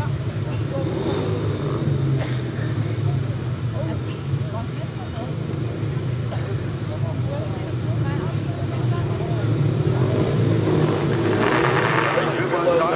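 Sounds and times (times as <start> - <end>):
motorcycle engines running: 0.0 - 12.9.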